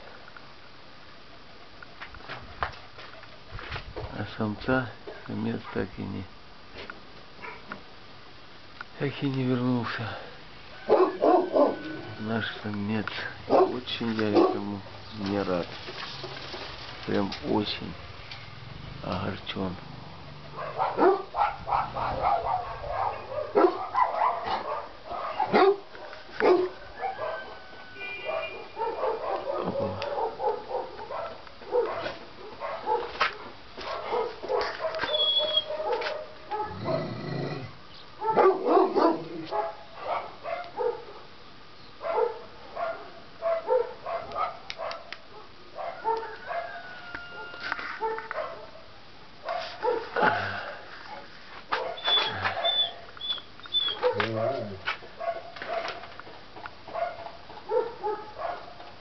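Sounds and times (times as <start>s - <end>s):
dog barking and yelping: 7.4s - 7.7s, 10.8s - 12.2s, 13.4s - 14.7s, 20.4s - 37.1s, 38.2s - 41.3s, 42.0s - 56.1s, 56.9s - 58.8s.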